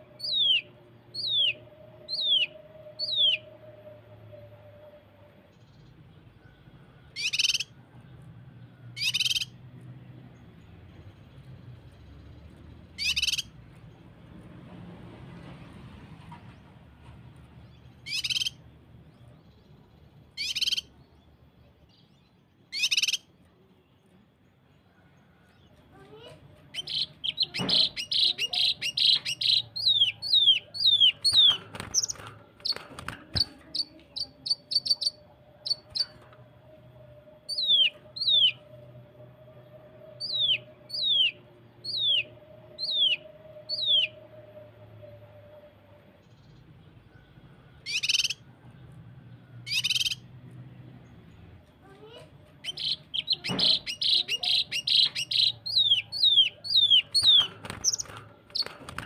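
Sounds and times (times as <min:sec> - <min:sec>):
harsh rasping bird bursts: 0:26.8 - 0:36.1, 0:52.6 - 0:59.0
bird whistling rapid runs: 0:26.8 - 0:36.2, 0:52.6 - 0:59.0.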